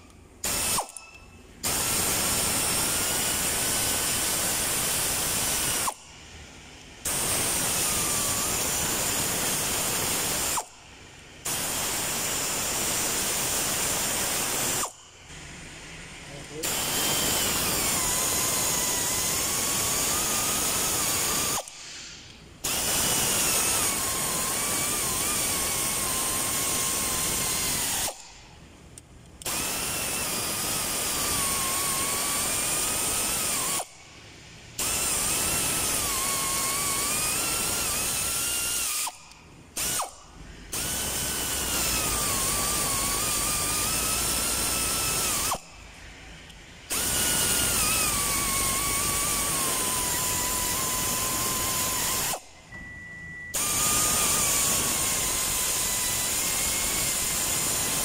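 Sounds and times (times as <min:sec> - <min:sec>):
power tool motor whining: 0:00.0 - 0:06.1, 0:07.0 - 0:10.8, 0:11.4 - 0:15.1, 0:16.4 - 0:28.4, 0:29.4 - 0:34.0, 0:34.8 - 0:52.6, 0:53.5 - 0:58.0.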